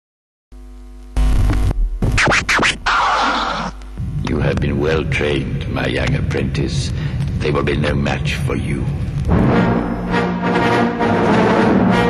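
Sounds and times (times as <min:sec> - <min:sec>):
faint hum: 0:00.5 - 0:10.6
turntable scratches: 0:01.2 - 0:04.8.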